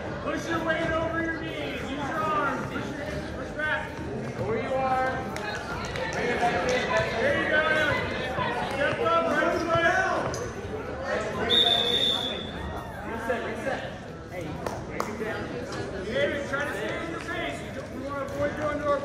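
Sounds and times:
referee's whistle blast: 11.4s - 12.5s.

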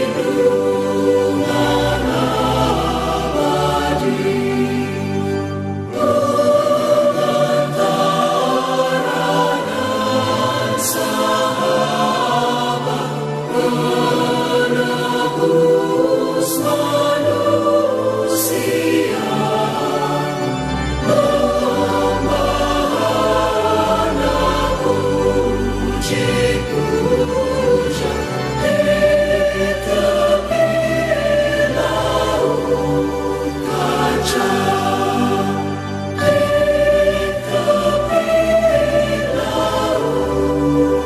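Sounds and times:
choir singing sustained notes: 0.0s - 41.0s.

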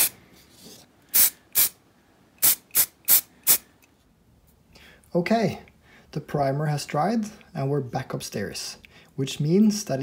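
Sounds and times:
spray can hissing in bursts: 1.1s - 1.8s, 2.4s - 3.7s.

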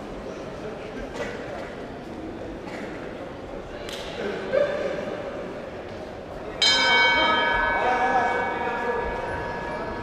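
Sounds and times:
ring bell struck: 6.6s - 10.0s.

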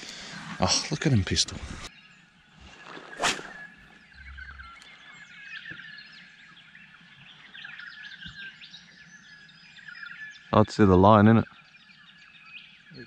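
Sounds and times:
many birds chirping: 0.0s - 13.0s
sharp whoosh: 3.1s - 3.7s.

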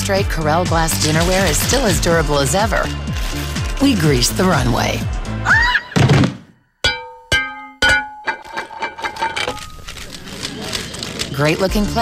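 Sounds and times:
thud: 6.0s - 6.5s
glass plate striking hard floor: 6.8s - 9.6s.

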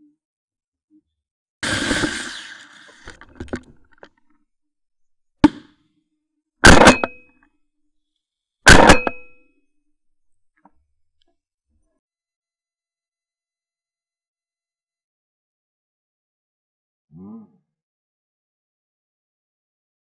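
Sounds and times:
shotgun shots: 6.6s - 7.2s, 8.7s - 9.2s.

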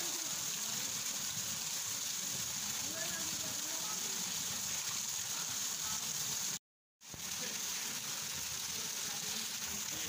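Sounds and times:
water hissing: 0.0s - 10.0s.

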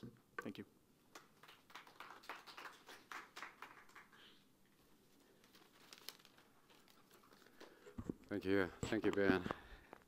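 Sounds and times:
faint sparse applause: 1.1s - 4.3s.

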